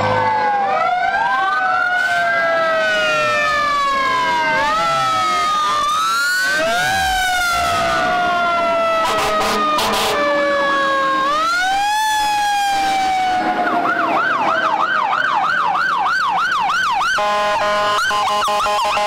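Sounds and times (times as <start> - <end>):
fire engine sirens wailing: 0.0 - 19.0
fire engine horn blasts: 8.8 - 10.4, 17.0 - 19.0.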